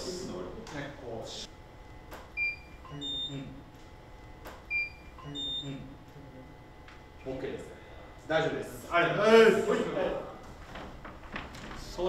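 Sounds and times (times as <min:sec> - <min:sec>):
short high beeps: 0:02.4 - 0:03.5, 0:04.7 - 0:05.8.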